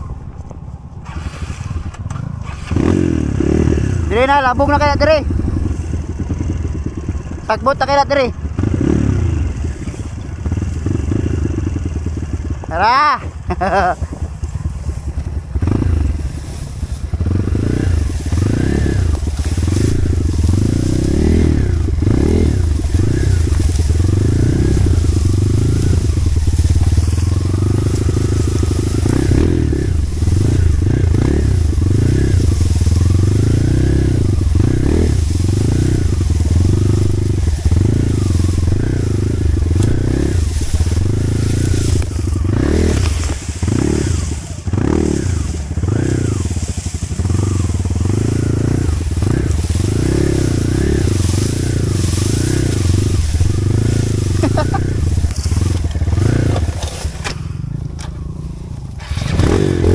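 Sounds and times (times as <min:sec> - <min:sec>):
dirt bike engine revving: 0:01.0 - 0:59.9.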